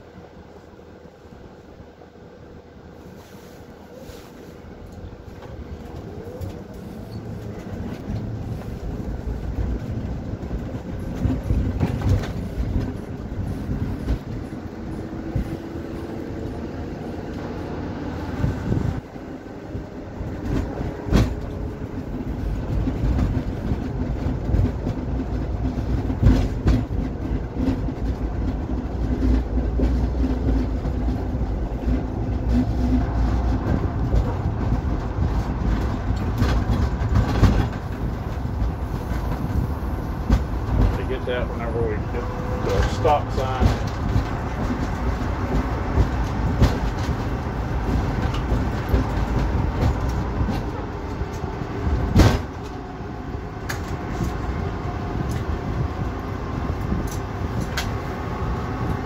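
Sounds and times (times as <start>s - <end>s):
road rumble: 0.0s - 59.0s
knocks and rattles: 22.6s - 39.6s, 42.6s - 52.8s.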